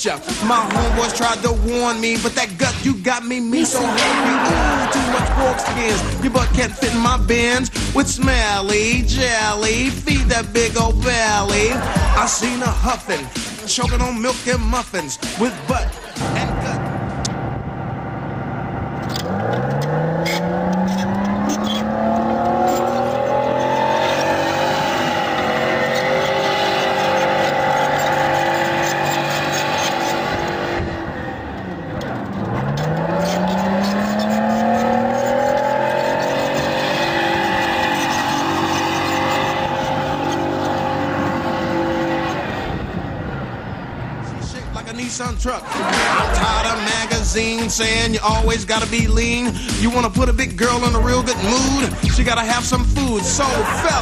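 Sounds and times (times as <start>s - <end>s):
tracked vehicle engine revving: 3.8s - 13.7s, 16.1s - 54.0s
tracks swiveling: 18.8s - 44.6s.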